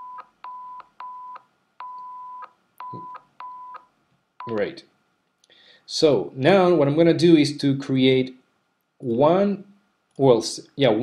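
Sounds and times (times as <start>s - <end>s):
short test-tone beeps: 0.0s - 4.6s
beep clicks: 0.0s - 4.7s.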